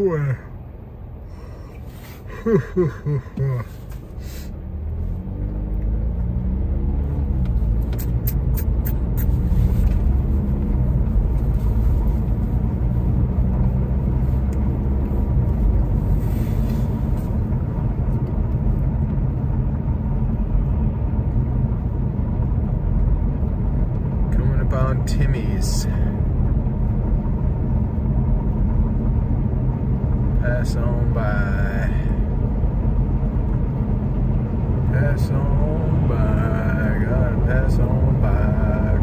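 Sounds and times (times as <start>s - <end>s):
car engine and road noise: 0.0s - 39.0s.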